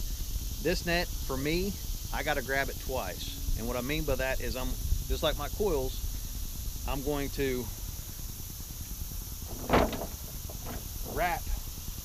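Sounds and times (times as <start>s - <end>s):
wind on microphone: 3.3s - 7.2s.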